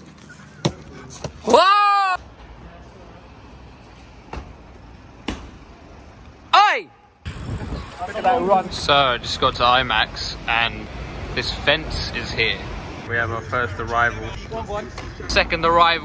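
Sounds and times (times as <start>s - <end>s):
low street background noise: 0.0s - 16.0s.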